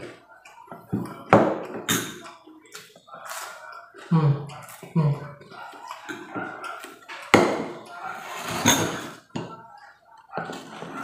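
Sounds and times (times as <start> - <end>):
chewing food: 2.2 - 8.2.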